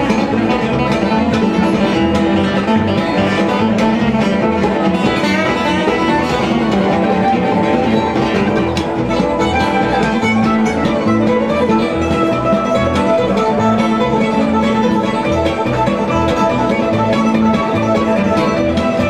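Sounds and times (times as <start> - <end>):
acoustic guitars strumming: 0.0 - 19.0
bluegrass band playing: 0.0 - 19.0.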